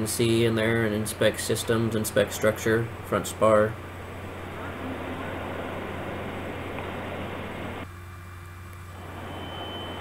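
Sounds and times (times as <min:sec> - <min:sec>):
hangar rushing hum: 0:00.0 - 0:10.0
low drone: 0:02.8 - 0:07.9.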